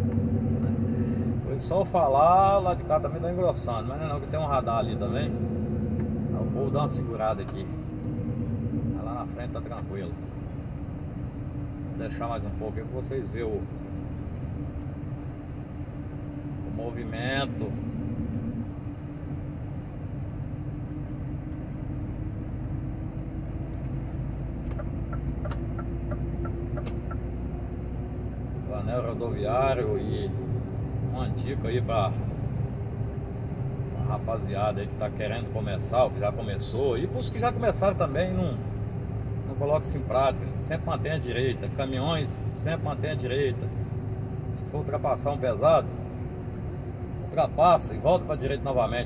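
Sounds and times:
constant hum: 0:00.0 - 0:49.0
truck diesel engine and road rumble: 0:00.0 - 0:49.0.

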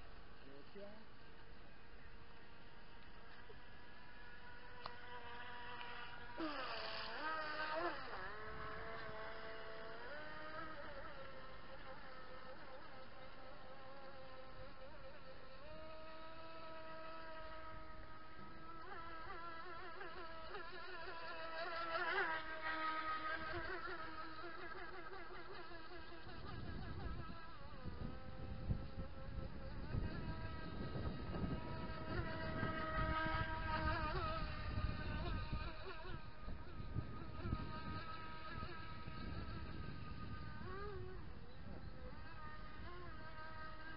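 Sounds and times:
model boat motor whining: 0:00.0 - 0:43.9.

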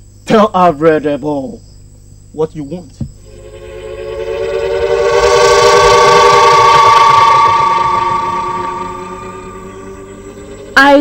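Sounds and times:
synthesizer chord music sting: 0:03.3 - 0:11.0.

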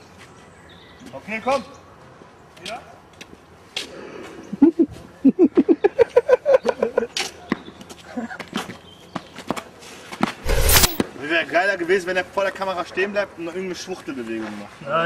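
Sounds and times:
sharp clicks: 0:10.4 - 0:11.0.

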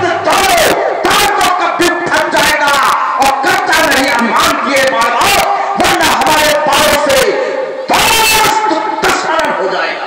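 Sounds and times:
man shouting through loudspeakers: 0:00.0 - 0:10.0.

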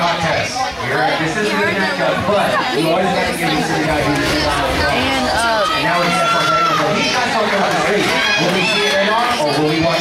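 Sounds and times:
voices talking in echoing hall: 0:00.0 - 0:10.0.

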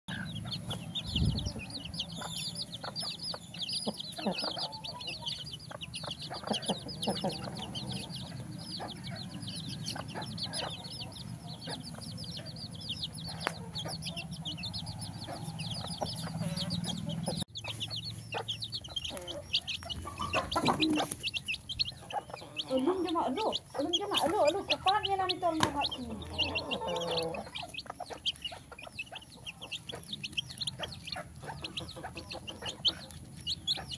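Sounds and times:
chicks peeping: 0:00.1 - 0:33.9
hens clucking: 0:00.1 - 0:33.9
pecking on concrete: 0:00.1 - 0:33.9.

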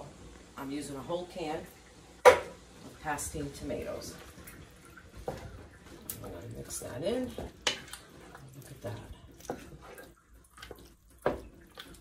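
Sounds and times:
spoon knocking against pot: 0:02.2 - 0:02.6
wet squelching and sloshing: 0:03.8 - 0:12.0.

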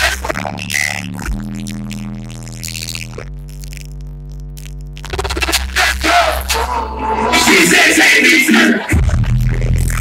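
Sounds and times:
low synth bass notes: 0:00.0 - 0:10.0.

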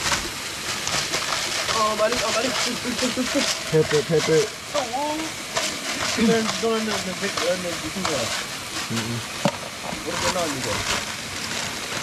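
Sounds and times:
people talking: 0:01.7 - 0:05.4, 0:06.1 - 0:08.3, 0:08.9 - 0:09.2, 0:09.9 - 0:10.9.

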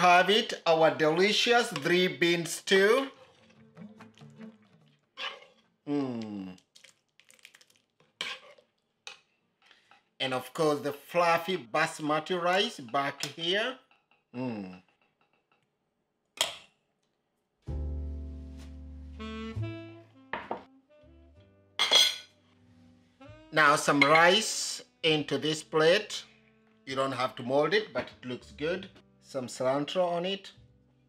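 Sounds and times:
background music: 0:00.0 - 0:05.2, 0:17.7 - 0:31.0
metal ladle stirring stew in pot: 0:02.7 - 0:05.7, 0:07.2 - 0:09.3
crockery clattering: 0:21.8 - 0:22.3.

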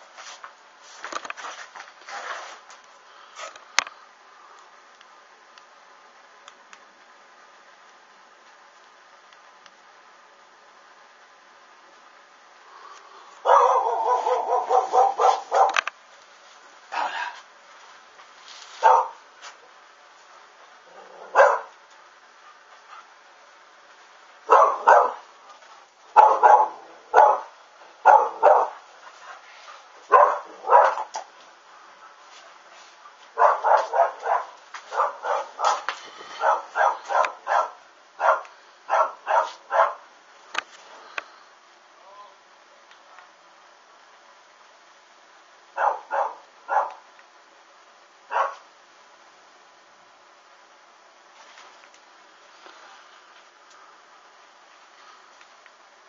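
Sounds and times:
dog barking: 0:13.4 - 0:15.8, 0:18.8 - 0:19.2, 0:20.9 - 0:21.8, 0:24.5 - 0:25.3, 0:26.2 - 0:28.8, 0:30.0 - 0:31.2, 0:33.4 - 0:40.1, 0:45.8 - 0:47.0, 0:48.3 - 0:48.6.

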